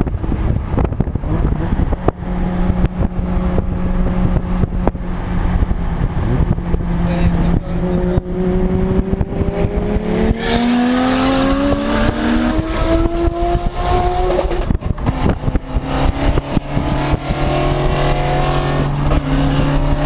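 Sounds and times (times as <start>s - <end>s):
car engine accelerating: 0.0s - 20.0s.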